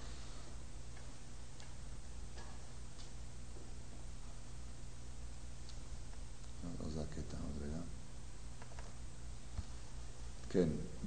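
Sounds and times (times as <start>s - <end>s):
steady low hum and hiss: 0.0s - 11.0s
faint irregular clicks: 8.6s - 9.7s.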